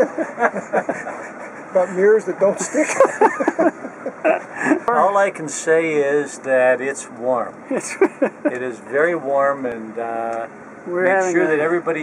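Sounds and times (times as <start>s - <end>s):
people talking and laughing: 0.0s - 5.4s, 7.6s - 8.9s.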